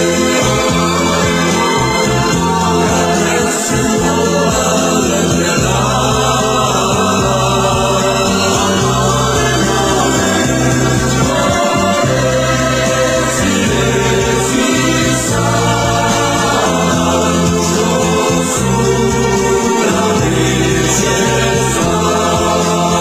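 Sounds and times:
choir singing slow chords: 0.0s - 23.0s.

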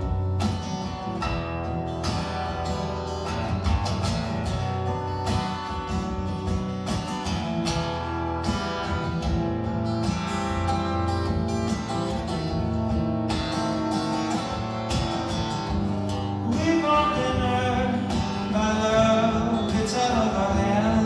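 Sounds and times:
acoustic guitar strumming chords: 0.0s - 21.0s.

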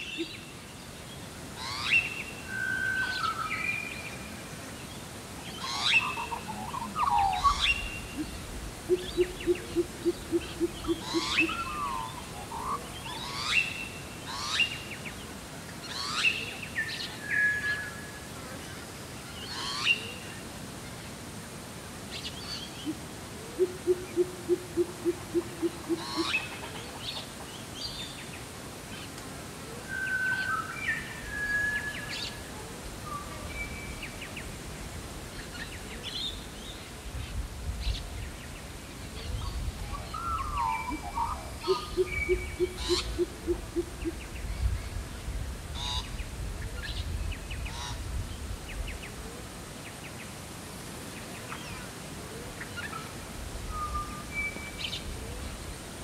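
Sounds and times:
bird whistles and chirps: 53.7s - 54.9s.

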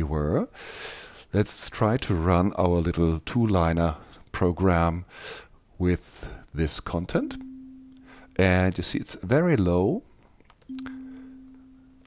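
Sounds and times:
kalimba note: 7.2s - 8.3s, 10.7s - 12.0s.

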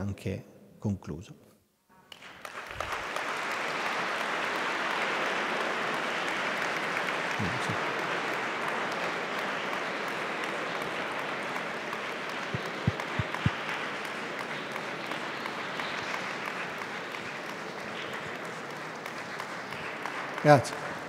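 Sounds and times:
audience applauding: 2.1s - 21.0s.

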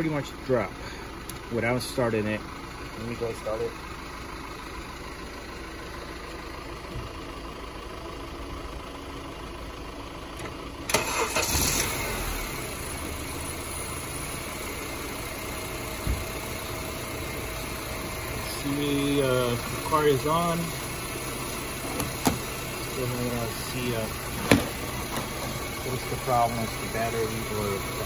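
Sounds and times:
car engine cranking and idling: 0.0s - 28.0s.

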